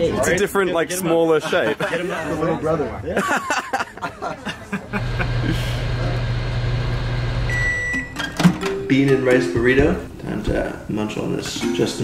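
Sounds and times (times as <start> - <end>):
microwave oven humming: 5.0 - 8.1
microwave beep: 7.4 - 8.9.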